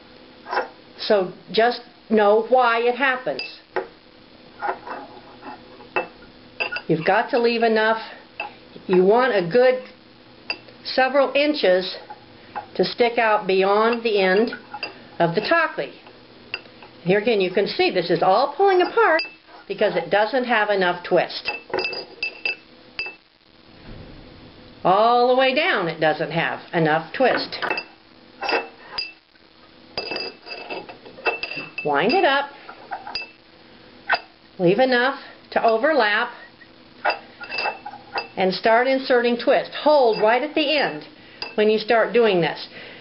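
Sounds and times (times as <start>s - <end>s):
spindle pinging on ceramic bowl: 4.6s - 7.6s, 21.5s - 23.2s, 33.0s - 33.4s, 37.0s - 38.4s, 40.0s - 41.7s.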